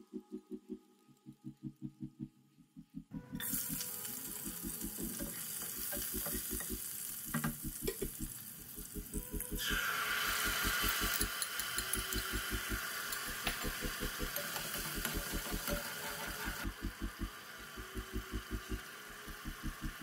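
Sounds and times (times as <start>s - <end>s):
music with pulsing bass beat: 0.0s - 3.4s, 7.4s - 9.6s, 12.3s - 14.4s, 16.6s - 20.0s
sauce sizzling in hot oil: 3.4s - 20.0s.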